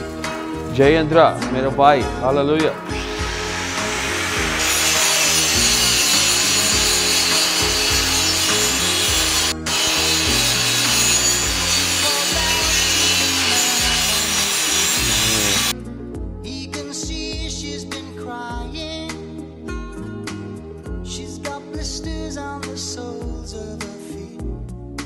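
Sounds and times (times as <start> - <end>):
angle grinder grinding steel: 2.8 - 15.7.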